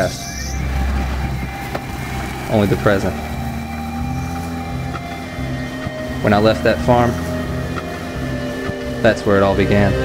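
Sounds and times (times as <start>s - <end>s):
vehicle engine and road drone: 0.0s - 10.0s.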